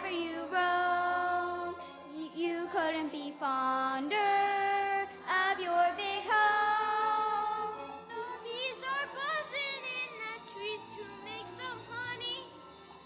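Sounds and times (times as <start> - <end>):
child singing through microphone: 0.0 - 12.4.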